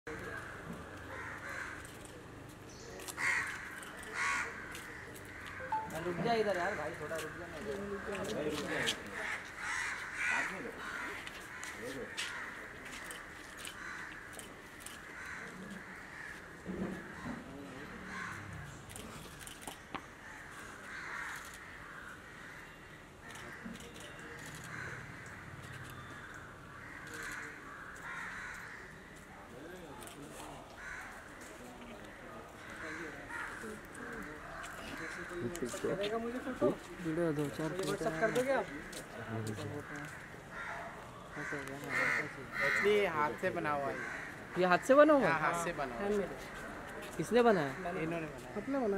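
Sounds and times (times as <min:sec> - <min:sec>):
crow cawing: 0:00.1 - 0:02.0, 0:03.0 - 0:18.8, 0:20.1 - 0:29.3, 0:30.7 - 0:46.6, 0:47.4 - 0:48.9
outdoor background noise: 0:00.1 - 0:48.9.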